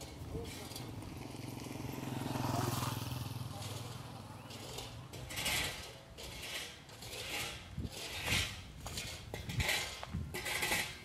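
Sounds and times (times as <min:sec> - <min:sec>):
motorcycle engine running: 0:00.1 - 0:05.1.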